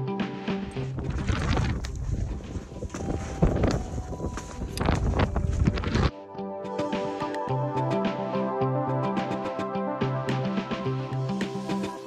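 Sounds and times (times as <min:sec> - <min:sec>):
wind buffeting microphone: 0:00.8 - 0:06.1
electronic music with steady beat: 0:02.8 - 0:12.0.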